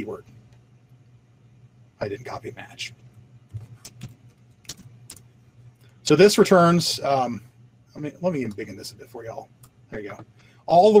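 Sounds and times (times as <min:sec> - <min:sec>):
low steady hum: 0:00.0 - 0:11.0
computer keyboard keystrokes: 0:03.6 - 0:05.3.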